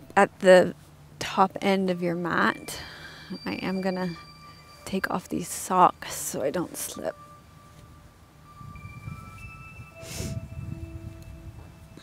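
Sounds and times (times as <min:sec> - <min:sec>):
soft chime-like background music: 0:00.0 - 0:12.0.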